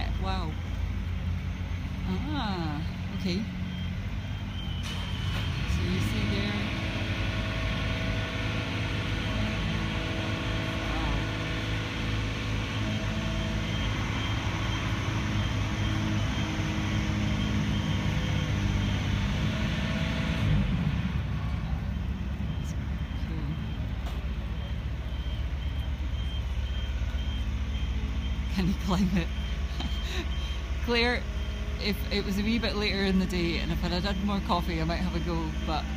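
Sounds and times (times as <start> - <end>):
high-pitched alarm beeps: 0.0 - 1.2, 2.0 - 8.2, 12.4 - 20.4, 21.8 - 35.9
machinery engine rumbling: 0.0 - 35.9.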